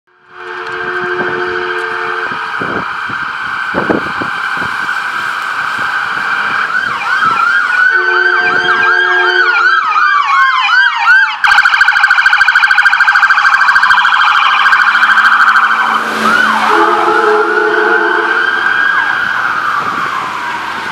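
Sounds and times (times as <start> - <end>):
ambulance siren: 0.1 - 20.9
short horn blasts: 0.3 - 2.4, 7.9 - 9.6, 15.9 - 18.6.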